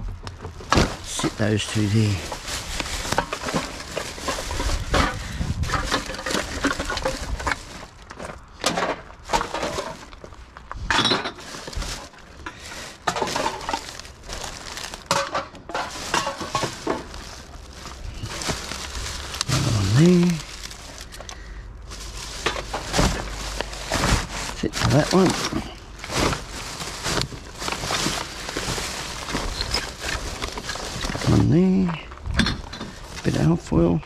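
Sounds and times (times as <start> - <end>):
plastic bag rustling: 0.0 - 34.0
cans and bottles clinking: 3.0 - 14.2, 14.8 - 20.5.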